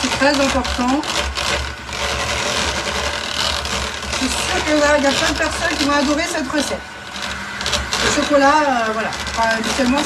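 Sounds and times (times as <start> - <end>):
electric hand mixer whipping cream: 0.0 - 10.0.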